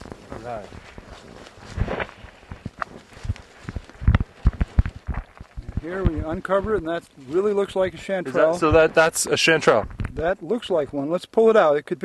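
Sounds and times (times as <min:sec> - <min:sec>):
footsteps in forest litter: 0:00.0 - 0:08.0.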